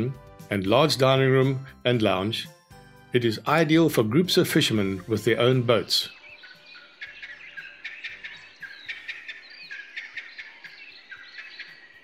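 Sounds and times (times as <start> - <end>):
faint music: 0.0 - 12.0
wild birds chirping: 0.0 - 12.0.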